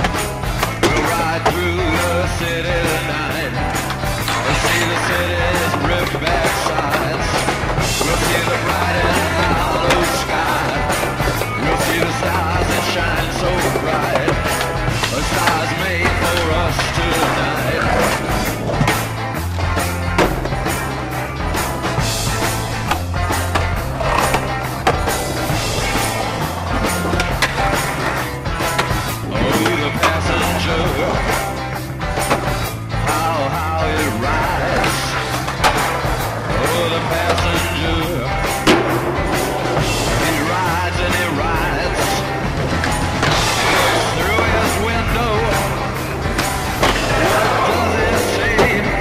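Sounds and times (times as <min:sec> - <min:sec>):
music with repeating bass line: 0:00.0 - 0:49.0
skateboard wheels rolling: 0:00.0 - 0:49.0
skateboards knocking: 0:00.0 - 0:49.0.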